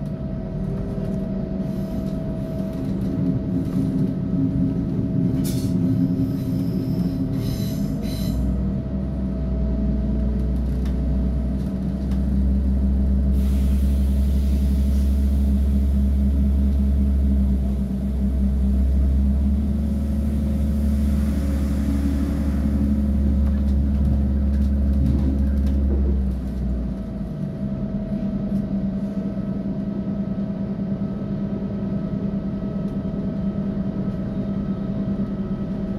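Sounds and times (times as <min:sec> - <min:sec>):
railcar engine low rumble: 0:00.0 - 0:35.9
wheels rushing on track: 0:10.0 - 0:27.4.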